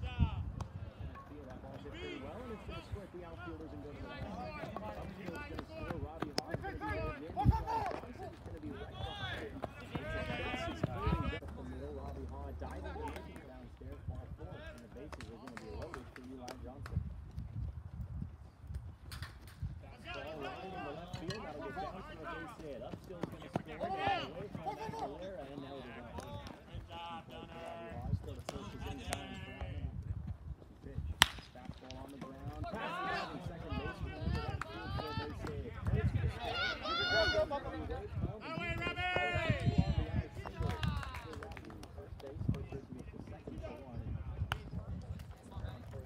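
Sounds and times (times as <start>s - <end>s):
crowd calling out and chattering: 0.0s - 16.7s, 19.7s - 46.0s
bat cracking on baseball: 31.2s - 31.9s
spectators shouting: 36.3s - 37.6s.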